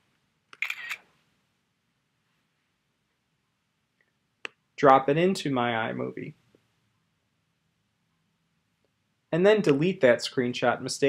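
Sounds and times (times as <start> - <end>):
synthesized camera shutter click: 0.6 - 1.0.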